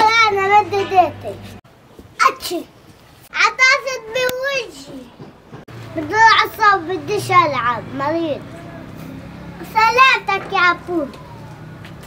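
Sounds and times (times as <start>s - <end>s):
child's voice: 0.0s - 1.5s, 2.2s - 2.7s, 3.3s - 5.2s, 5.9s - 8.6s, 9.5s - 11.5s.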